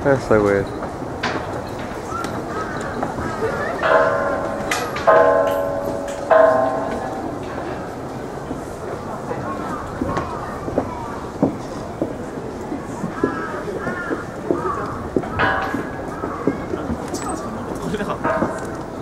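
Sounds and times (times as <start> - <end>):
faint background voices: 1.4 - 19.0.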